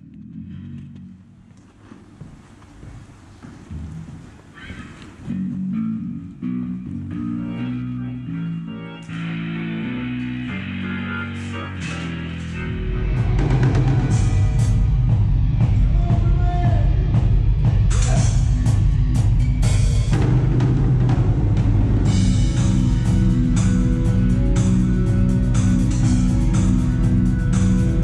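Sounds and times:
bass and electric guitar low notes: 0:00.0 - 0:02.2, 0:03.6 - 0:28.0
full band with drums: 0:13.1 - 0:28.0.

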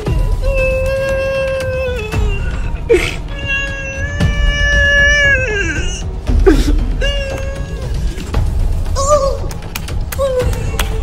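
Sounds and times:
man sobbing: 0:01.0 - 0:04.8.

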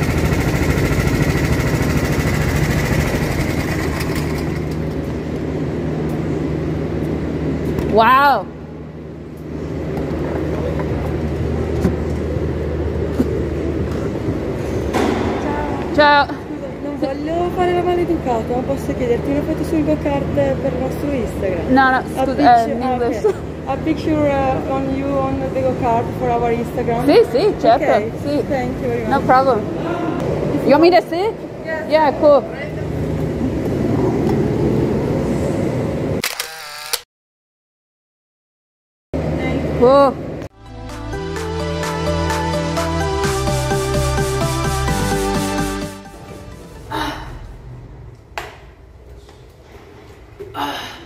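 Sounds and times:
go-kart engine running: 0:00.0 - 0:05.3
phone camera shutter sound: 0:36.2 - 0:37.1.

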